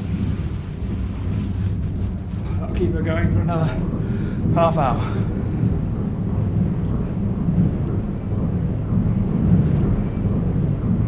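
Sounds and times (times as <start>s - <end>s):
millstones grinding with low rumble: 0.0s - 11.0s.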